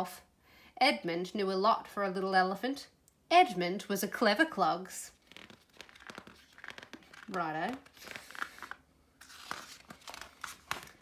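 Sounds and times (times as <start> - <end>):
paper pages rustling: 5.1 - 11.0.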